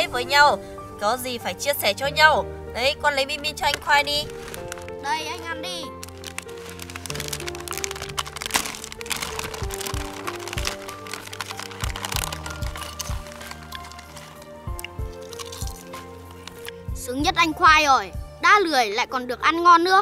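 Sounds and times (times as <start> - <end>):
background music: 0.0 - 20.0
plastic snack bag crinkling: 3.7 - 16.9.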